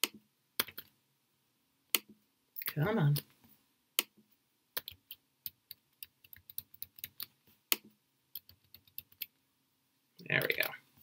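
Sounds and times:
computer keystrokes and clicks: 0.0s - 0.9s, 1.9s - 3.3s, 4.8s - 9.4s.

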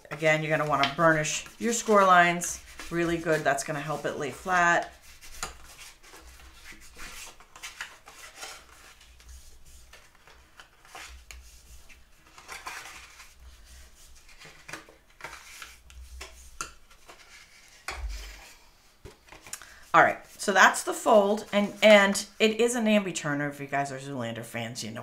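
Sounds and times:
soft low thump: 17.9s - 18.4s.

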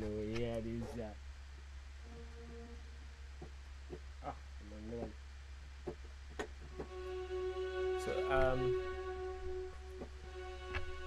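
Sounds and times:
low mains hum: 0.0s - 11.0s
sustained string chord: 2.0s - 3.2s, 6.7s - 11.0s
sampled string notes on keyboard: 2.0s - 3.5s, 6.6s - 11.0s.

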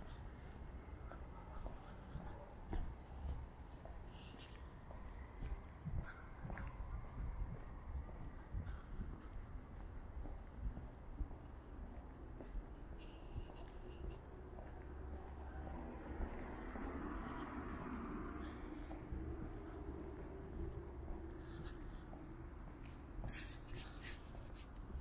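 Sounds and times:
distant traffic hum: 0.0s - 25.0s
footsteps on pavement: 0.0s - 25.0s.

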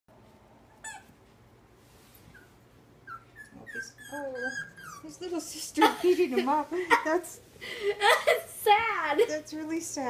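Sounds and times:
puppy whimpering: 0.7s - 1.2s, 2.3s - 5.3s
puppy yelp: 0.7s - 1.2s, 2.3s - 5.1s.

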